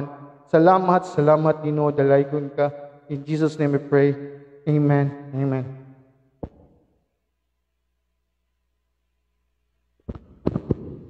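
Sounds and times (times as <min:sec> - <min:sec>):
heavy thumps on microphone: 0:06.4 - 0:06.8
microphone handling knock: 0:06.4 - 0:06.8.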